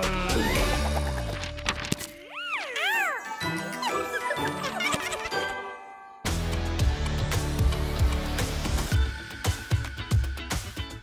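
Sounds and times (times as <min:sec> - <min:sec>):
light cartoon music: 0:00.0 - 0:11.0
tinkling chime-like effects: 0:02.9 - 0:06.3.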